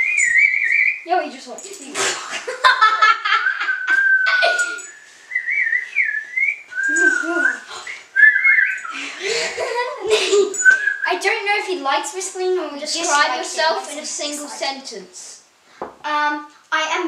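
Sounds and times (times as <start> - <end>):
child whistling: 0.0 - 1.1, 3.4 - 9.0, 10.6 - 11.1
people talking: 1.0 - 4.9, 6.9 - 8.0, 9.0 - 15.4, 16.0 - 17.0
laughter: 2.3 - 4.8, 6.9 - 7.6, 8.9 - 10.6.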